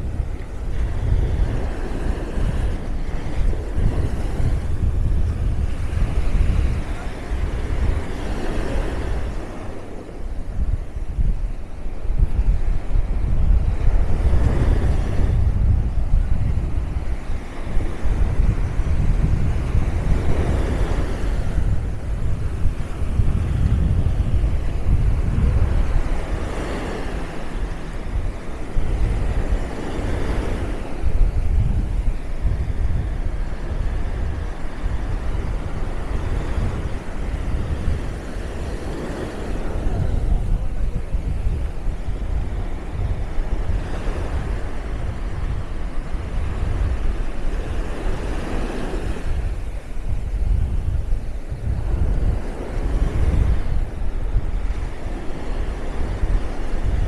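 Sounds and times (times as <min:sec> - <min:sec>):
small sea waves breaking on sand: 0:00.0 - 0:57.0
wind buffeting microphone: 0:00.0 - 0:57.0.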